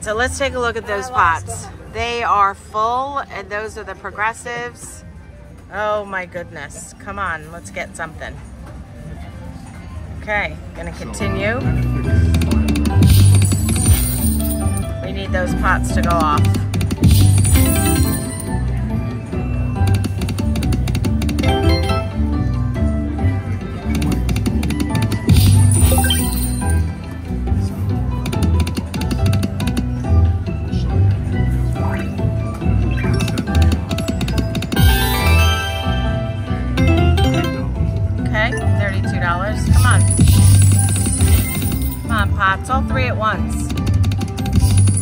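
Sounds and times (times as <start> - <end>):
slot machine game music: 11.1 - 27.5, 31.0 - 45.0
jingly chimes: 17.0 - 20.1, 25.3 - 27.0, 33.0 - 37.8.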